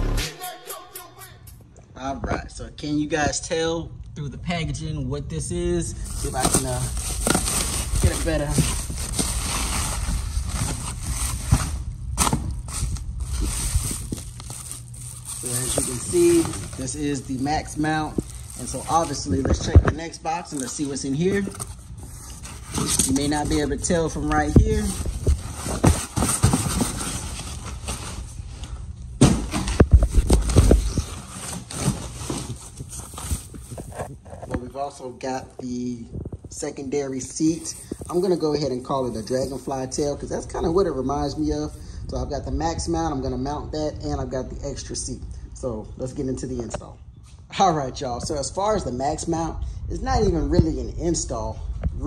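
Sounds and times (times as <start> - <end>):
low steady rumble: 1.5 - 47.2, 47.8 - 52.0
bubble wrap crinkling: 6.0 - 28.5, 29.8 - 34.4
foam sheet rustling: 6.0 - 28.5, 29.2 - 34.3
cardboard box being opened: 6.1 - 19.8, 20.5 - 28.3, 29.2 - 34.2.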